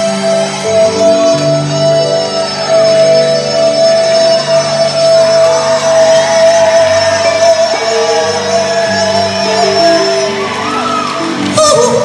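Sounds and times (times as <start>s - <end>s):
live soul band music: 0.0s - 12.0s.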